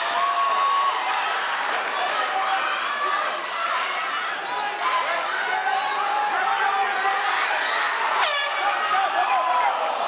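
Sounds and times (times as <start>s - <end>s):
crowd shouting and chatter: 0.0s - 10.0s.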